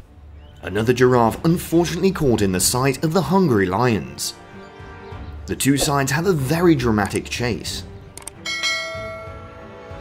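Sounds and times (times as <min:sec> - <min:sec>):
struck bell chime: 0:08.5 - 0:09.7.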